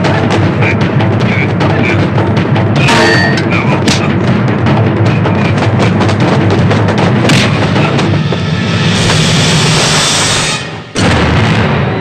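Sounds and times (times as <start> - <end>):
dramatic background score: 0.0 - 12.0
booming hit effects: 5.6 - 12.0
loud rushing whoosh: 7.5 - 11.0.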